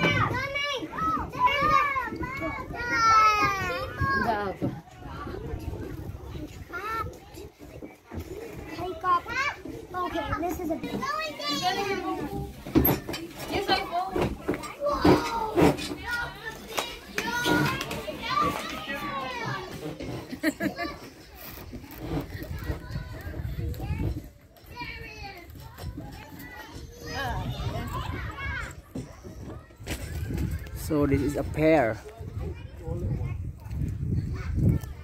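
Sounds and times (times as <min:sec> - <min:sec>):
children calling and chattering: 0:00.0 - 0:35.0.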